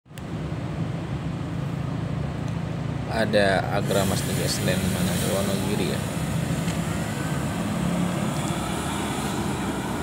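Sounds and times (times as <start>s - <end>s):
bus diesel engine humming: 0.1s - 10.0s.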